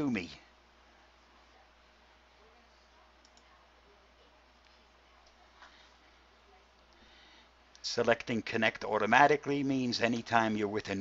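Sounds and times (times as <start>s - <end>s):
low steady hum: 0.0s - 11.0s
computer mouse clicks: 3.2s - 3.5s.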